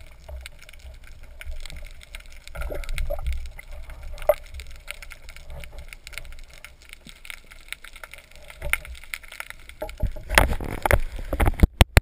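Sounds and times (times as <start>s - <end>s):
underwater clicks and crackles: 0.0s - 12.0s
underwater knocks: 9.8s - 12.0s.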